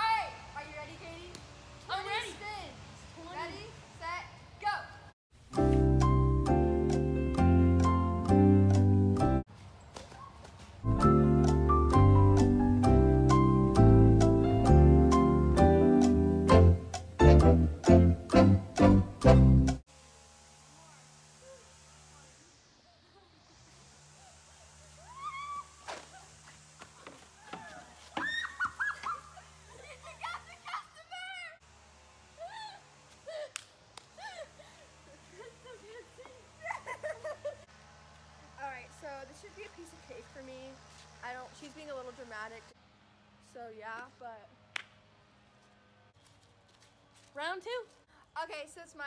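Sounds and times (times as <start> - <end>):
girls squealing and laughing: 24.1 - 31.6, 32.3 - 37.7.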